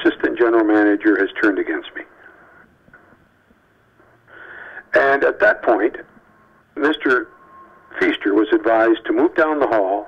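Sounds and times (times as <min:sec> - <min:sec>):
man talking over telephone: 0:00.0 - 0:02.2, 0:04.9 - 0:06.1, 0:06.8 - 0:07.3, 0:07.9 - 0:10.0
man breathing in: 0:04.3 - 0:04.9.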